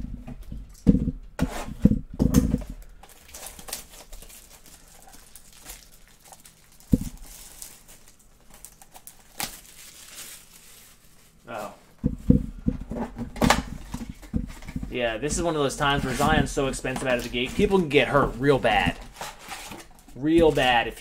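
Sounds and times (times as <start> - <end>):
box knocking: 12.0 - 15.4.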